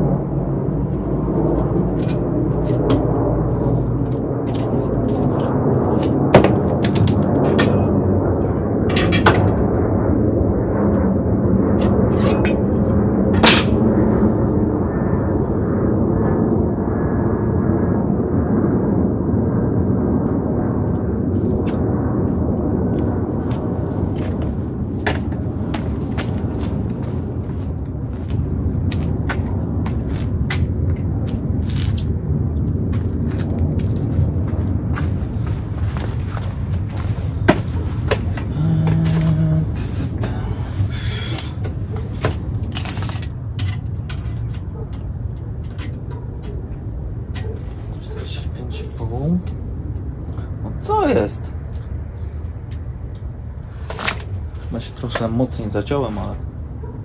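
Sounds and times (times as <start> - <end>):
steady low rumble: 0.0 - 57.0.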